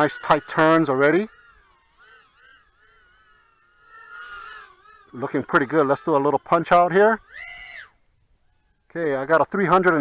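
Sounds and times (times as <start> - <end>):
quadcopter motors whining: 0.0 - 10.0.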